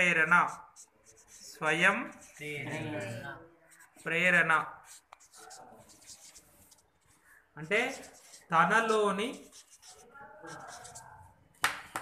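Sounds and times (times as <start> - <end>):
person speaking: 0.0 - 11.5
marker scratching on paper: 0.0 - 11.6.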